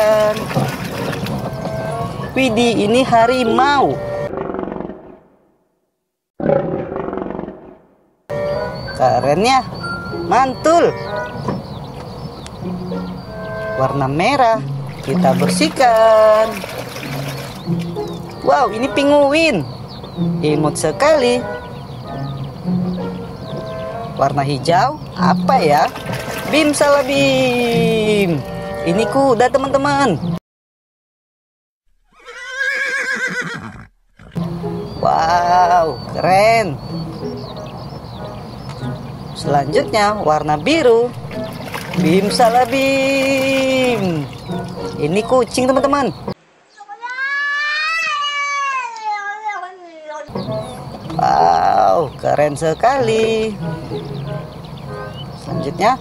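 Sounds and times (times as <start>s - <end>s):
tiger roaring: 4.3s - 5.3s, 6.4s - 7.9s
horse whinnying: 32.1s - 34.4s.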